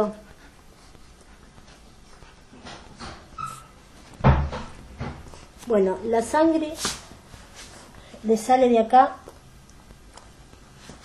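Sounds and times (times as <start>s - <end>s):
faint squeak: 3.3s - 3.8s
dull thump: 4.2s - 5.3s.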